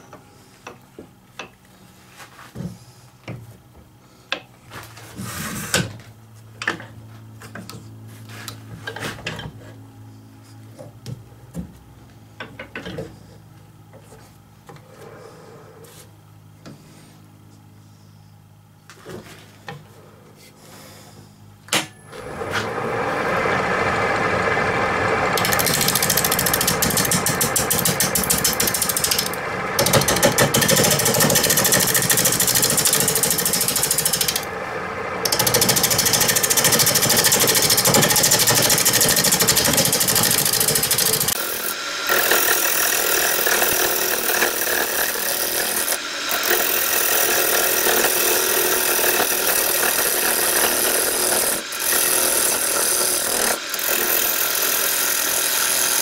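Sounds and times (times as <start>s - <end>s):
lathe motor hum: 22.1s - 56.0s
lathe tool cutting wood: 22.1s - 56.0s.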